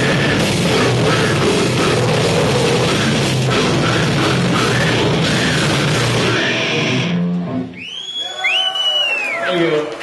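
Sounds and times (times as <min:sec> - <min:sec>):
death metal band playing: 0:00.0 - 0:07.7.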